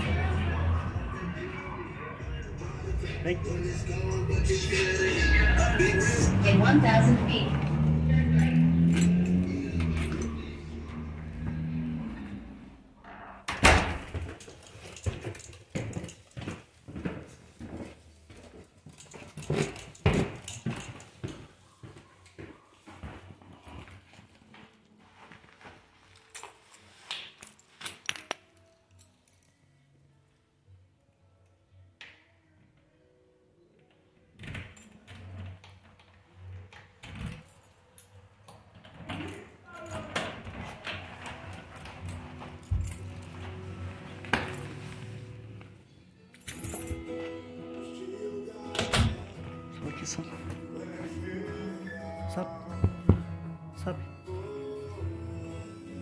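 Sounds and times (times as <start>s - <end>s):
keys jangling: 8.3s - 10.6s, 14.1s - 16.5s, 18.8s - 21.4s, 26.1s - 29.7s, 34.4s - 40.3s, 41.4s - 45.1s, 46.3s - 47.4s.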